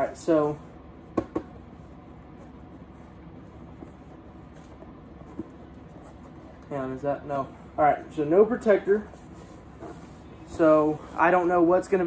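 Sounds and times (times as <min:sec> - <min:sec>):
knocks on cardboard box: 0:01.2 - 0:01.5.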